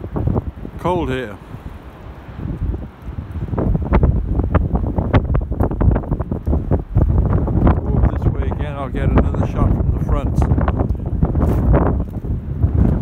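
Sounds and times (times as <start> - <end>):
wind buffeting microphone: 0.0 - 13.0
footsteps on pebbles: 11.4 - 13.0.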